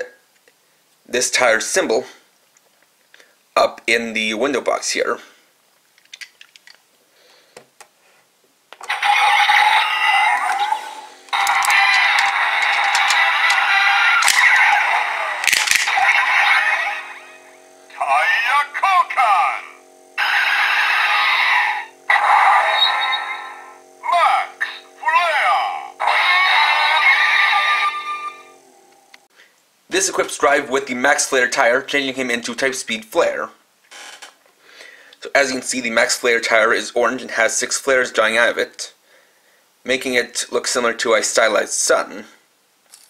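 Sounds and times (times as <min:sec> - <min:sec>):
electronic voice calls and jingles: 0:08.8 - 0:28.4
toy belt music and effects: 0:08.8 - 0:29.0.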